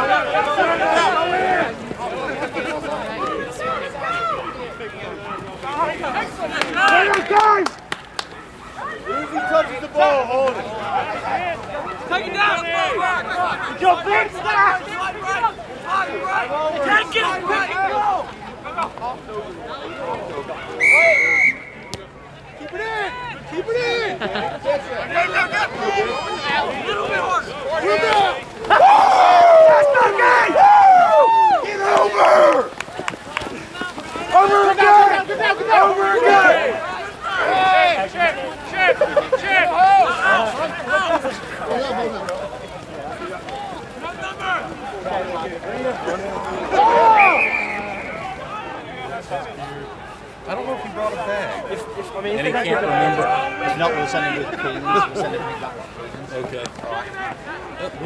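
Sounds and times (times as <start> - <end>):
spectators yelling encouragement: 0.0 - 55.8
people calling out and talking: 0.0 - 58.0.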